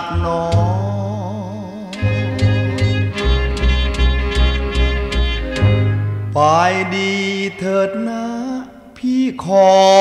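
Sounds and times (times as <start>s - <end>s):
man singing: 0.0s - 2.8s, 6.3s - 10.0s
band accompaniment: 1.9s - 7.7s.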